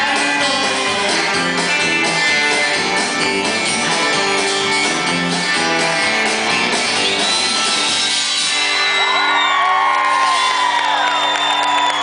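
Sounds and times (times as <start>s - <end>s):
audience whooping and cheering: 8.4s - 12.0s.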